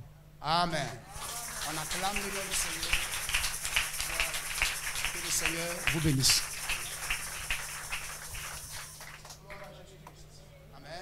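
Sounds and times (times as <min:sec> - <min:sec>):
congregation clapping: 0:00.9 - 0:10.2.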